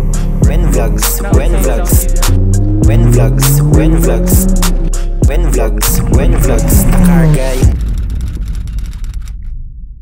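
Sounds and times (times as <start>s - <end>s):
low bass tone: 0.0s - 10.0s.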